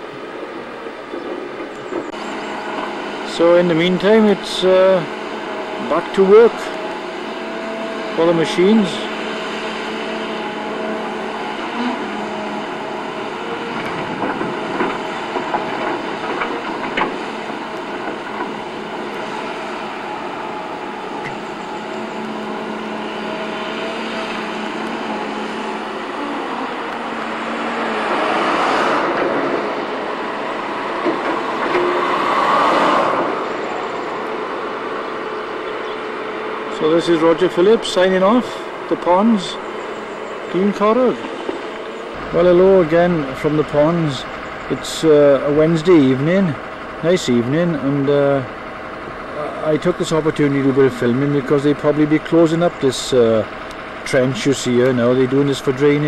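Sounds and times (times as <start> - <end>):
excavator diesel engine running: 0.0 - 56.0.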